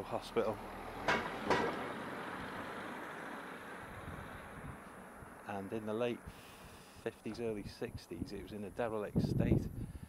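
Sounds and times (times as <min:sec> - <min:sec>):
car driving past: 0:00.5 - 0:05.5.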